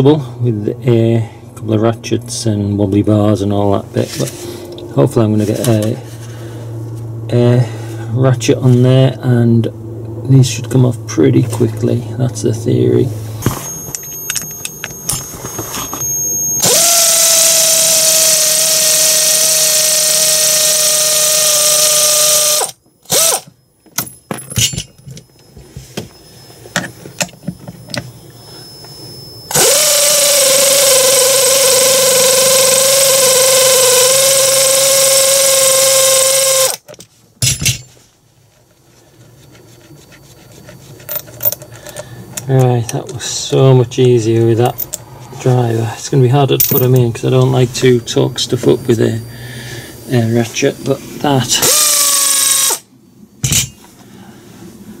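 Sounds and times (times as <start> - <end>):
power ratchet whining: 13.4 - 24.2, 24.8 - 36.9, 46.6 - 52.9
tool clicks and rattles: 40.6 - 42.5.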